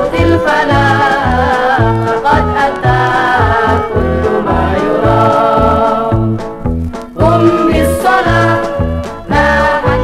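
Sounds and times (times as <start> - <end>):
instrumental orchestra music on vinyl: 0.0 - 10.0.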